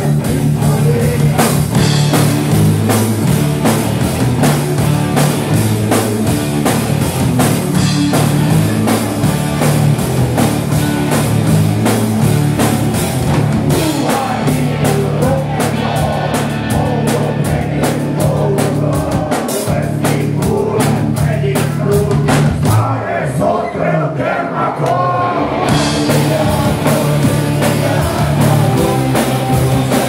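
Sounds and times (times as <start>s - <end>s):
drum kit beat: 0.0s - 23.0s, 24.9s - 30.0s
bass guitar: 0.0s - 23.6s, 24.8s - 30.0s
distorted electric guitars: 0.0s - 23.7s, 24.8s - 30.0s
person singing: 13.7s - 30.0s.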